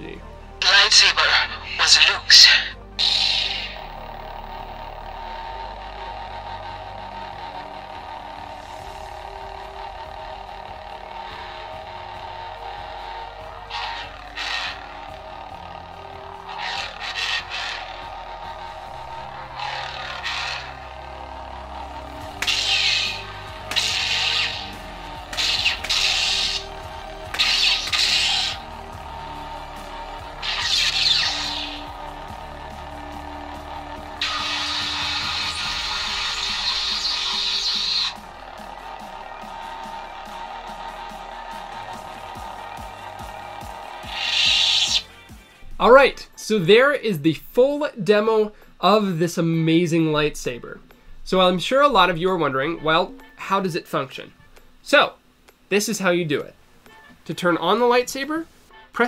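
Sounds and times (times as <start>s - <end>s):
lightsaber hum: 0.0s - 46.1s
loud sustained buzz: 0.0s - 46.2s.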